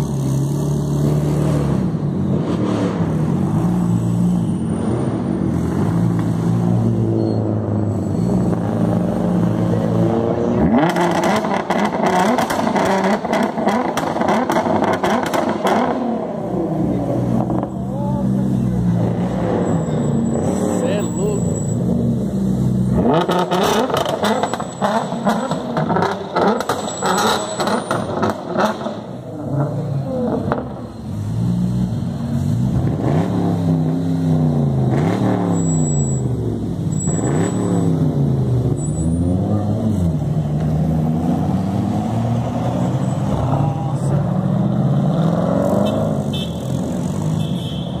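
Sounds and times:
sports car engines revving: 0:00.0 - 0:48.0.

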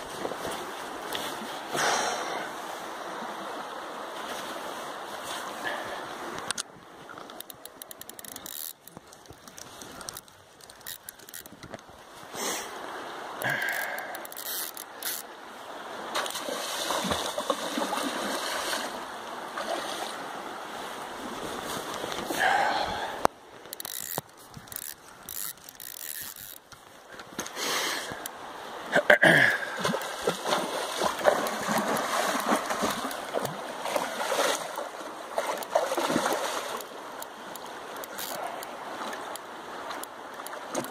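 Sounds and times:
river water flowing and splashing: 0:00.0 - 0:40.9
wind: 0:00.0 - 0:40.9.

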